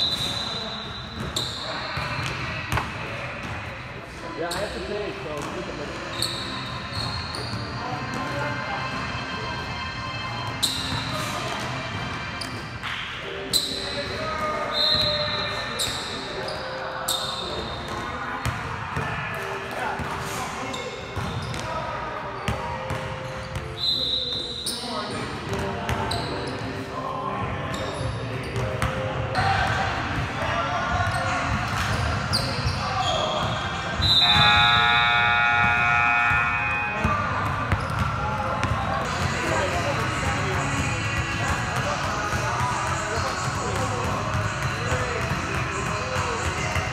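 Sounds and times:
shoe squeaks: 0.0 - 2.4, 4.4 - 4.9, 6.0 - 8.0, 10.4 - 11.6, 12.3 - 18.2, 20.2 - 25.3, 25.9 - 26.9, 27.6 - 29.6, 31.0 - 40.3
voices: 23.8 - 46.9
basketballs bouncing on hardwood: 37.5 - 46.9.

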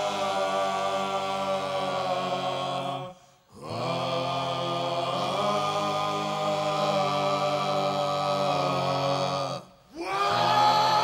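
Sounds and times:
male voices singing a chord: 0.0 - 11.0.

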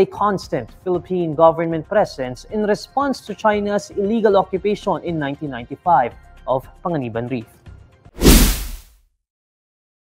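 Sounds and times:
whoosh with deep low boom: 8.2 - 8.8.

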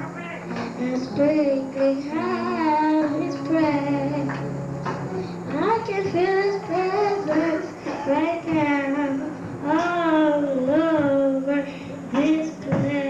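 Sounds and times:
girl singing into microphone: 0.0 - 13.0.

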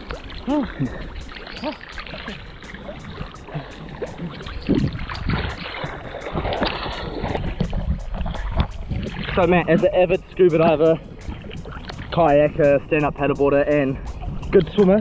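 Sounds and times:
swimming stroke splashes: 0.0 - 9.4
seawater sloshing and splashing: 0.0 - 15.0.

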